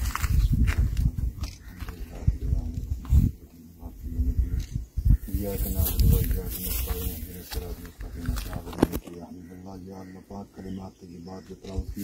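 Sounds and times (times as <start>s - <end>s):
indistinct voices: 0.7s - 12.0s.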